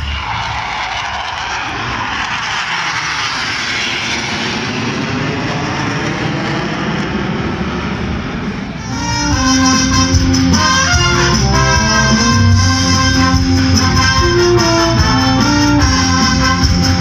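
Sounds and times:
jet flying past: 0.0 - 17.0.

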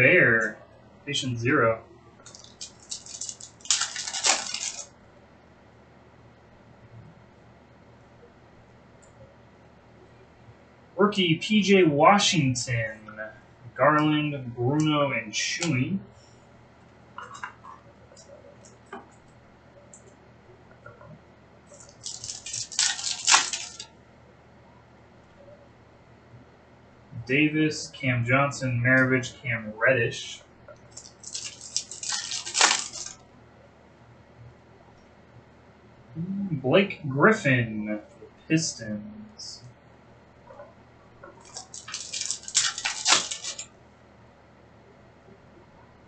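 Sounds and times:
foil wrapper tearing and crinkling: 2.2 - 4.9, 21.8 - 23.9, 30.9 - 33.2, 41.4 - 43.7.

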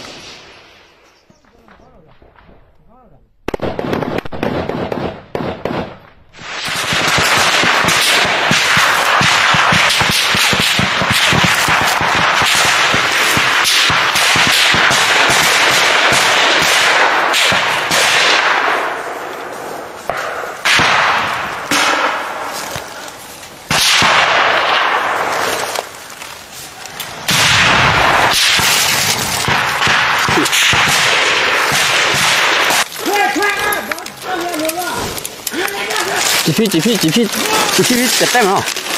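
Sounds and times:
rifle fire bursts: 3.4 - 19.2, 23.7 - 25.8, 27.2 - 33.6
automatic gunfire: 6.6 - 18.9, 27.3 - 32.8.

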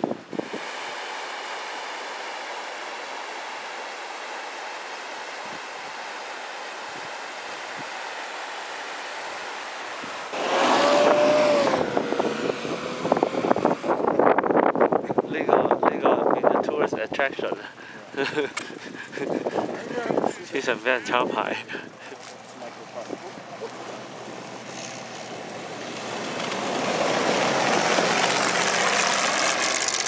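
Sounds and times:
gusty wind noise: 0.0 - 0.8, 10.0 - 22.0
river and small waterfall rushing: 0.0 - 14.3, 18.6 - 30.0.

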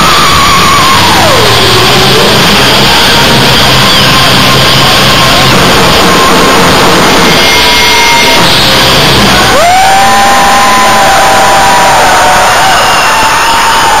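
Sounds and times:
crowd cheering: 0.0 - 14.0
live band music: 0.7 - 10.0.

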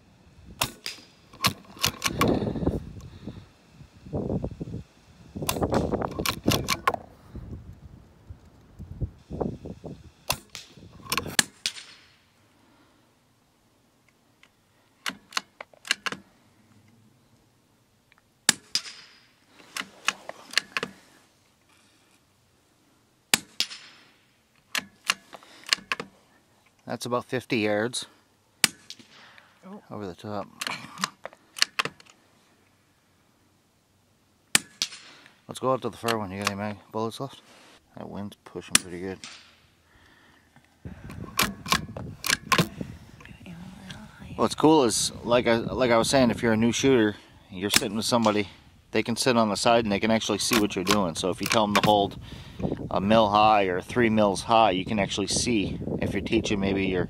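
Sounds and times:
wind noise on microphone: 0.3 - 0.8, 1.4 - 11.4, 40.8 - 49.0, 50.5 - 57.0
sharp clicks: 0.6 - 3.2, 5.4 - 7.1, 10.2 - 12.2, 14.0 - 16.3, 38.7 - 43.3, 50.4 - 52.0.

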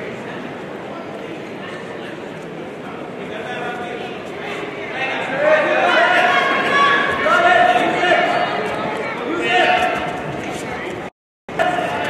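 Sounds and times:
crowd babble: 0.0 - 12.0
spectators shouting: 5.4 - 10.1.

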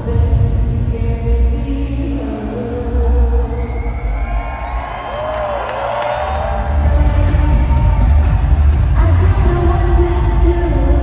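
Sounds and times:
loud live pop music: 0.0 - 11.0
crowd cheering: 3.6 - 9.0.

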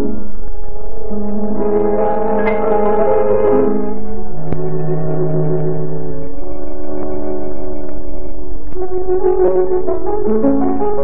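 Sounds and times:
low film soundtrack hum: 0.0 - 11.0
piano chords: 0.0 - 11.0.

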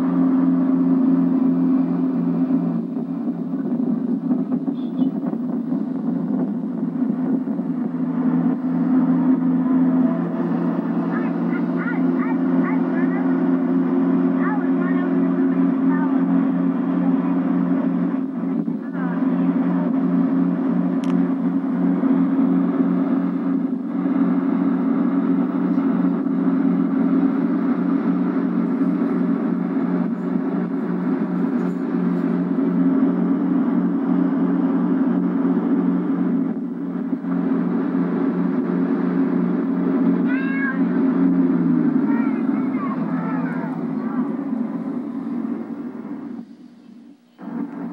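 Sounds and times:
boat engine running: 0.0 - 47.9.

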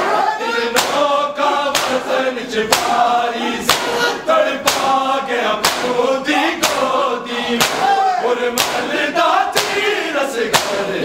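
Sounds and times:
men singing together: 0.0 - 11.0
palms slapping chests: 0.8 - 11.0.

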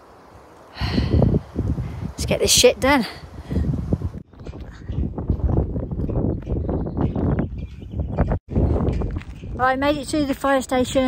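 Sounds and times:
footsteps on dirt trail: 8.5 - 10.6.

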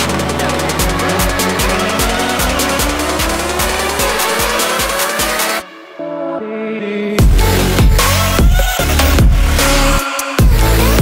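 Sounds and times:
rising synth sweep: 0.0 - 6.2
electronic dance music: 0.0 - 11.0
kick drum beat: 7.2 - 9.5, 10.4 - 10.7.

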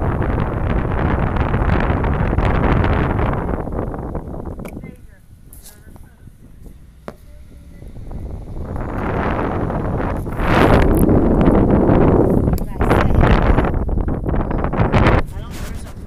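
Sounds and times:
wind rushing over microphone: 0.0 - 16.0.

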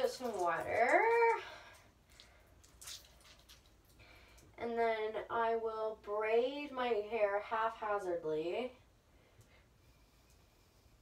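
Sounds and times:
wet hair squishing and dripping: 0.0 - 4.6.

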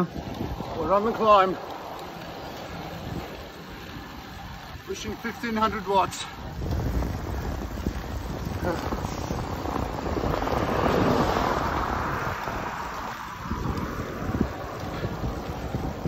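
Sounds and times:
road noise: 0.0 - 16.0
wind rushing over microphone: 0.0 - 16.0.

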